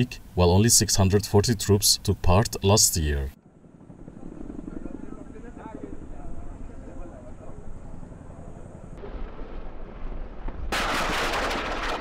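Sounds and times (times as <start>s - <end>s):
helicopters rumbling: 0.0s - 12.0s
automatic gunfire: 10.7s - 12.0s.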